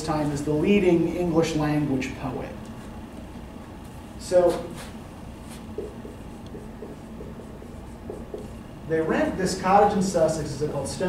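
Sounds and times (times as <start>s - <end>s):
marker writing on whiteboard: 4.4s - 8.6s.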